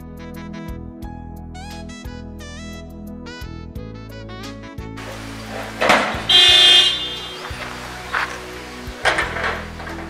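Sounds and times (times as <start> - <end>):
car horn honk: 5.1 - 8.0.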